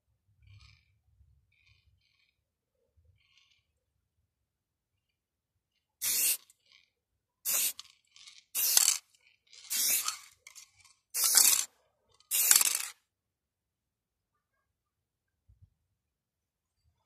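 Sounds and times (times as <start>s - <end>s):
spray paint can hissing: 6.0s - 6.4s, 7.4s - 9.0s, 9.6s - 11.7s, 12.3s - 13.0s.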